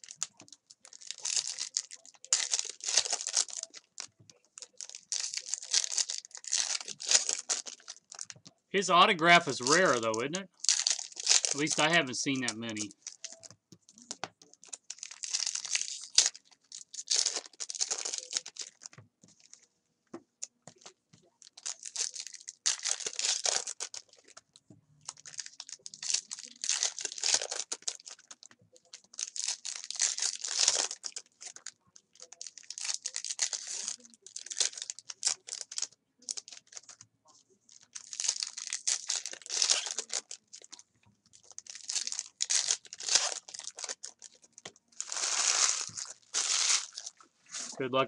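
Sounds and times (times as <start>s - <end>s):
foil wrappers torn and crinkled: 0.0s - 8.4s, 9.1s - 19.0s, 20.8s - 24.4s, 25.1s - 37.0s, 37.7s - 47.8s.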